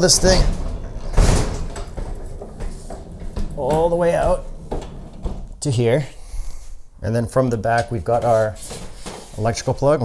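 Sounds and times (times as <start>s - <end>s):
dishwasher rolling on casters: 0.0s - 5.9s
small knocks: 0.3s - 5.6s.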